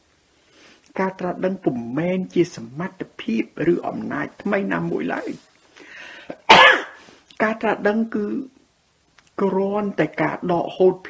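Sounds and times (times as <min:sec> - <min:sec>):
person speaking: 0:00.9 - 0:05.6, 0:07.3 - 0:08.6, 0:09.2 - 0:11.0
person coughing: 0:06.3 - 0:07.0.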